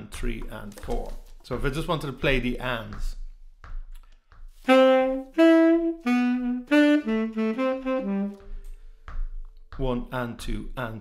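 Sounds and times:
foot tapping: 0.2s - 10.9s
tenor saxophone phrase: 4.7s - 8.5s.

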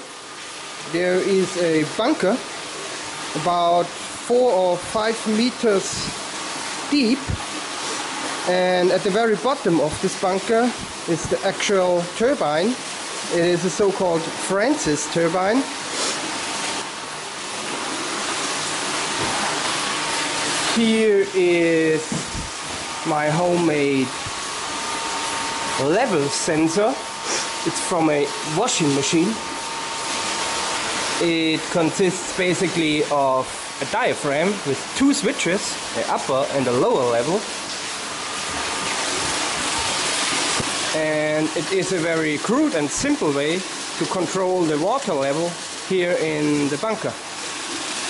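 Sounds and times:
water rushing through turbine: 0.0s - 48.0s.

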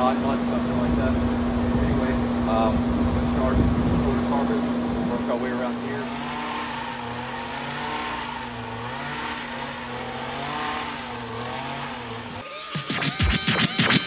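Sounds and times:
hedge trimmer cutting shrub: 5.1s - 13.5s
electronic music with sharp beats: 12.4s - 14.0s.

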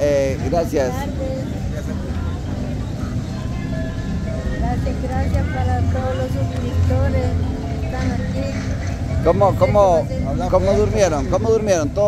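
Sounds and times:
faint crowd voices: 0.0s - 12.0s
low city rumble: 0.0s - 12.0s.

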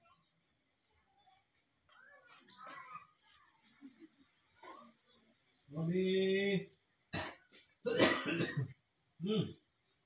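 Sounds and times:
person coughing: 7.2s - 8.7s.

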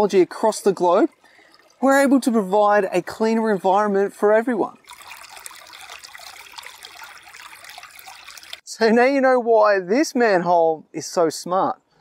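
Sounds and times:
stream trickling over rocks: 0.0s - 8.7s.

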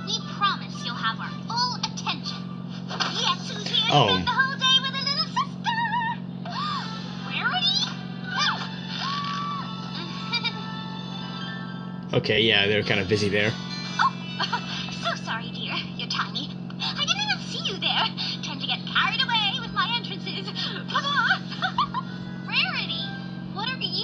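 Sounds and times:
low hum: 0.0s - 24.0s
high-pitched cartoon voices: 3.4s - 10.6s
background music: 6.4s - 18.1s, 18.8s - 24.0s.

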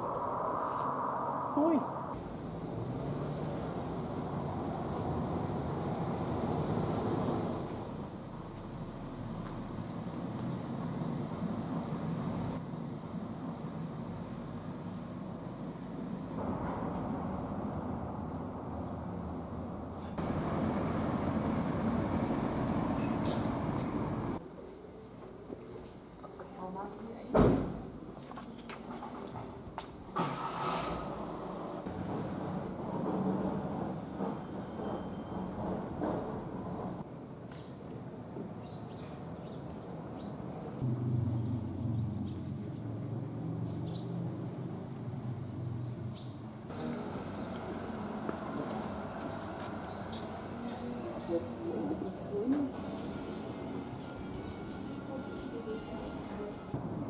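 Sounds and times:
car engine and tyres humming: 0.0s - 24.4s, 39.4s - 54.6s
low rumble of road traffic: 0.0s - 57.0s.

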